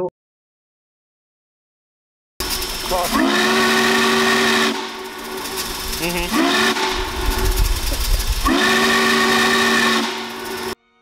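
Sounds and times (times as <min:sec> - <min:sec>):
steam locomotive whistle: 0:02.4 - 0:10.8
low rumble: 0:04.8 - 0:08.5.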